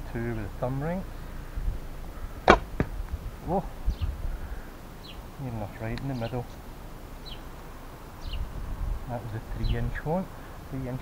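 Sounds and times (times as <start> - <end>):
arrow striking target bag: 2.4 - 3.0
bowstring snapping: 2.4 - 3.0.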